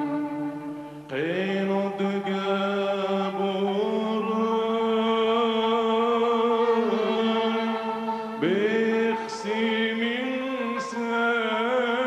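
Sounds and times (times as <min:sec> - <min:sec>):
instrumental accompaniment: 0:00.0 - 0:12.0
man singing long note: 0:00.0 - 0:12.0.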